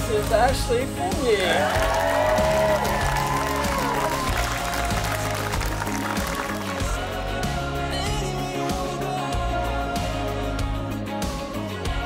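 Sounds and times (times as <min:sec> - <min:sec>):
guests applauding: 0:00.0 - 0:07.2
song with steady beat: 0:00.9 - 0:12.0.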